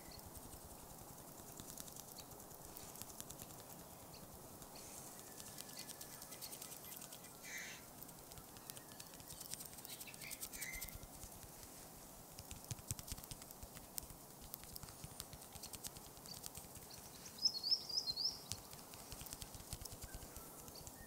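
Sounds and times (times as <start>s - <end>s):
bird chirps: 3.8s - 7.9s, 8.5s - 11.0s, 16.2s - 18.8s
high bird calls: 4.8s - 7.9s, 8.5s - 11.0s
soft tapping clicks: 8.0s - 11.6s, 12.4s - 17.1s, 18.4s - 21.0s.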